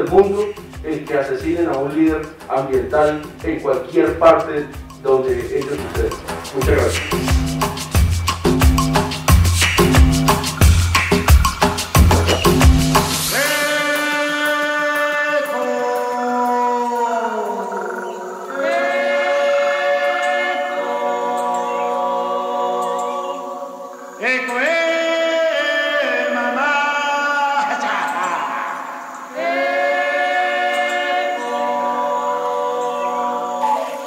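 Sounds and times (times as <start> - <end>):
voices singing held notes: 0.0 - 34.0.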